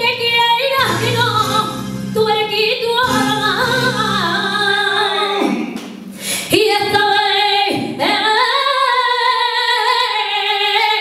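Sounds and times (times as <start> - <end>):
woman singing into a microphone: 0.0 - 11.0.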